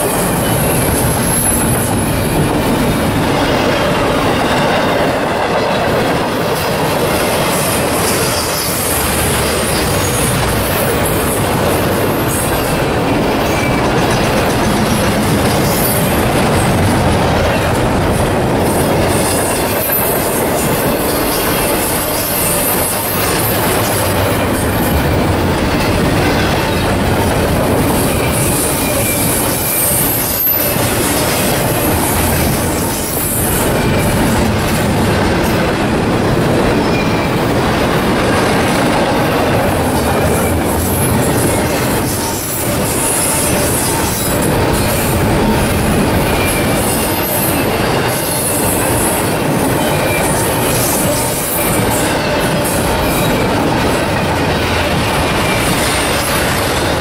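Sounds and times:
freight train wheels rumbling: 0.0 - 57.0
wheel squeal: 7.5 - 11.2, 28.0 - 34.4.

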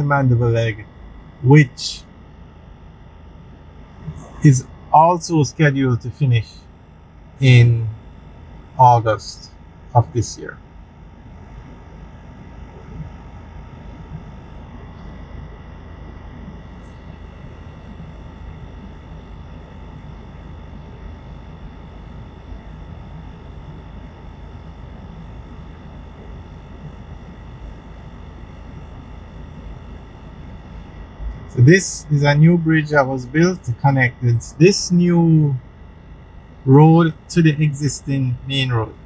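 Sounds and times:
faint steady whine: 0.0 - 39.0.

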